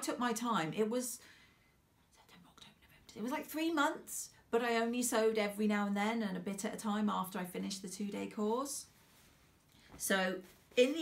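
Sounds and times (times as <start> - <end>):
woman speaking: 0.0 - 1.2, 3.1 - 8.9, 10.0 - 11.0
soft breath: 1.2 - 1.9.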